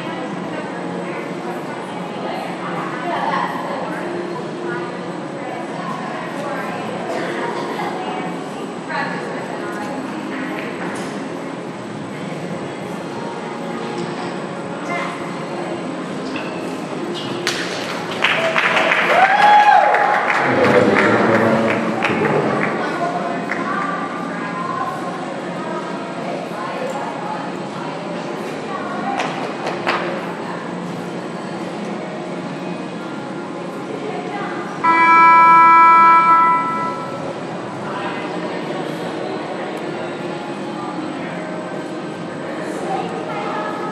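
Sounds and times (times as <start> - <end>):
indoor arena background noise: 0.0 - 43.9
signal horn buzzer tone: 34.8 - 37.3.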